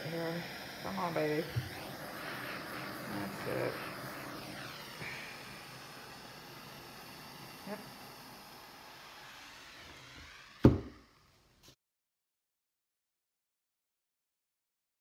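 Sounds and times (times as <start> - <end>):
torch flame hissing: 0.0 - 11.8
sharp loud knock: 10.6 - 10.9.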